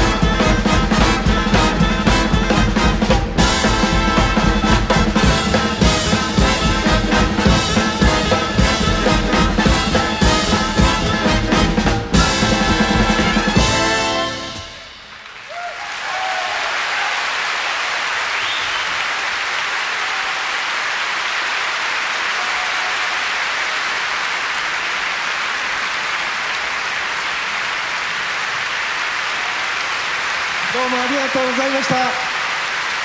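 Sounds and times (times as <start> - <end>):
audience applause: 0.0 - 33.0.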